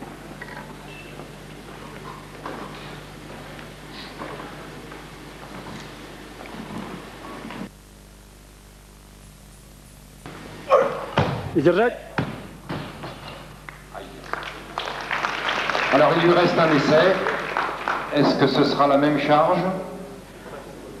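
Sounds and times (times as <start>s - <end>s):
people shouting: 10.7s - 11.2s.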